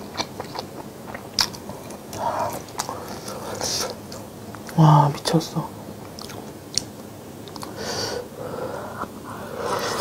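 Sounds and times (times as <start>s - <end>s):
person chewing food: 0.0s - 4.8s, 6.0s - 7.8s.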